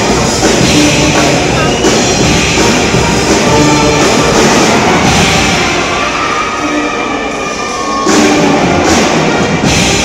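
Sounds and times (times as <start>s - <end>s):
low drums: 0.0s - 7.4s, 8.0s - 10.0s.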